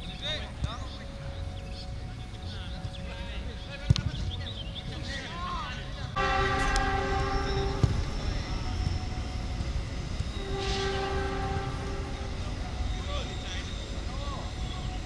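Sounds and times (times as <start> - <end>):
low rumble: 6.2 - 15.0
train horn blasts: 6.2 - 15.0.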